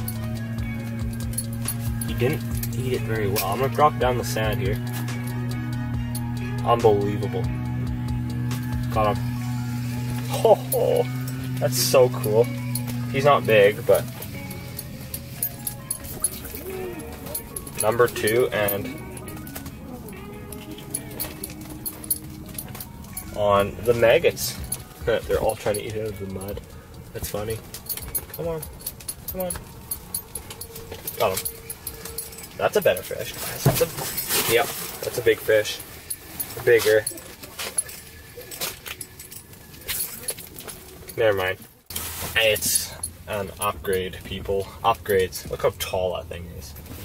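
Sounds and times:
faint background music: 0.0s - 47.0s
clicks and rustles of handling gear: 8.2s - 46.0s.

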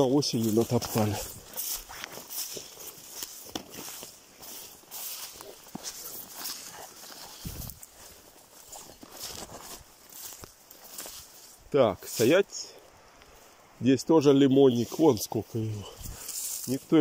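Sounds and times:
twigs cracking: 0.0s - 12.3s, 15.9s - 17.0s
footsteps through dry ferns: 0.0s - 13.8s, 14.4s - 17.0s.

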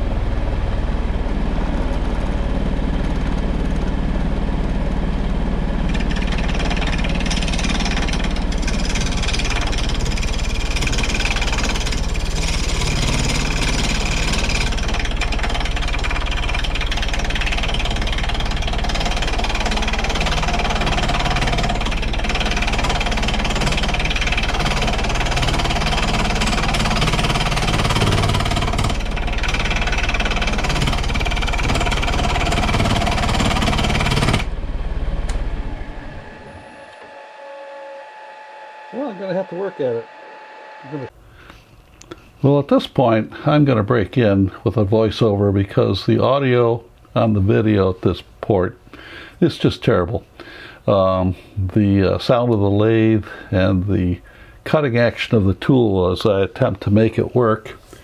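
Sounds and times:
lathe spinning: 0.0s - 41.2s
lathe tool chattering on metal: 5.8s - 34.5s.

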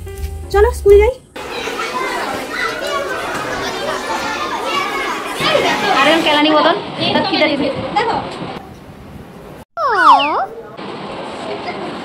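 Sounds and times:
children chattering and calling out: 1.4s - 8.3s, 9.8s - 10.8s.

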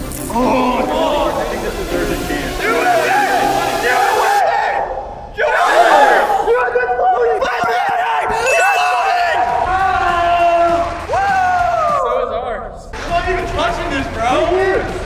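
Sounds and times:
young men shouting excitedly: 0.3s - 1.9s, 2.5s - 12.4s.

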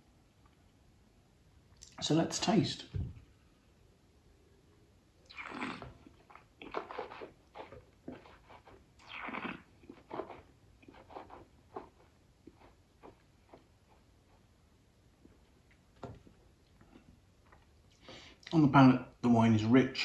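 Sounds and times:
person sipping wine: 5.3s - 11.9s.

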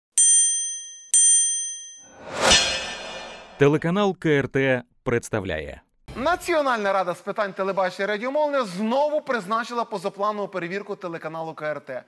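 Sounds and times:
bright high chime dings: 0.2s - 2.1s.

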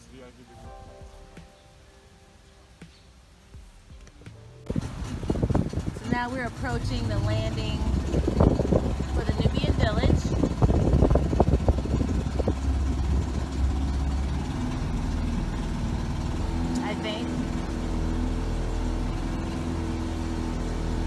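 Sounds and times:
motorboat engine running: 4.6s - 21.0s.

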